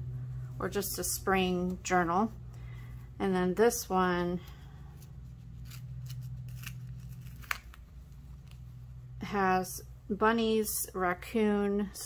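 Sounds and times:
steady low hum: 0.0 - 12.0
light scratches: 4.4 - 8.7.

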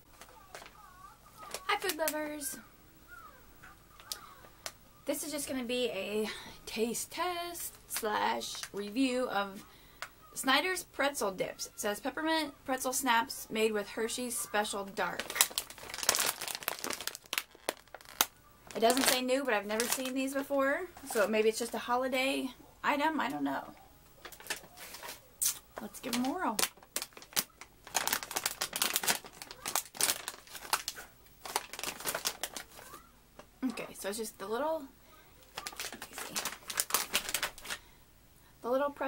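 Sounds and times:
plastic snack bag crackling: 0.1 - 2.6, 3.9 - 5.6, 14.0 - 21.8, 24.2 - 33.1, 35.4 - 37.9.

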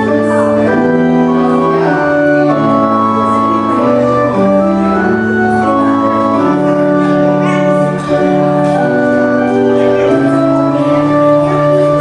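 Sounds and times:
organ playing sustained chords: 0.0 - 12.0.

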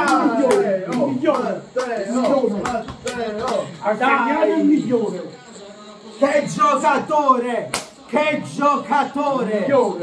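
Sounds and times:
hand claps: 0.0 - 3.6, 7.7 - 8.0
men shouting and cheering: 0.0 - 5.3.

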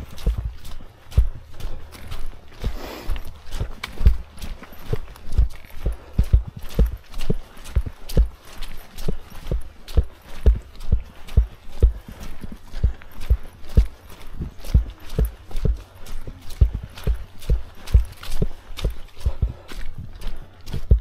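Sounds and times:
footsteps on muddy dirt trail: 0.0 - 21.0.

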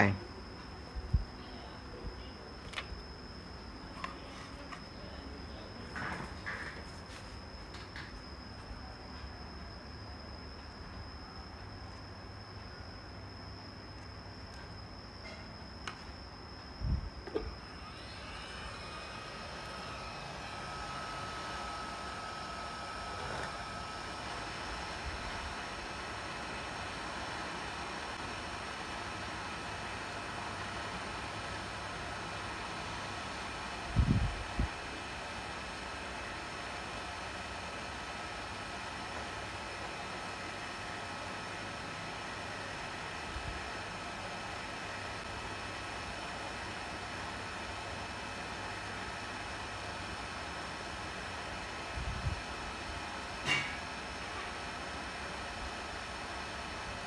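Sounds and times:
hot air station blowing: 16.8 - 57.0.

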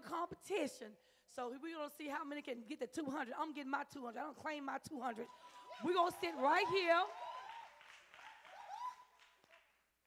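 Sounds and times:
congregation applauding: 5.3 - 9.9.

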